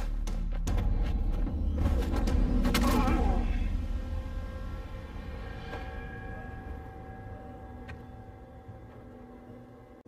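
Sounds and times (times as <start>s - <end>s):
low ambient drone: 0.6s - 10.0s.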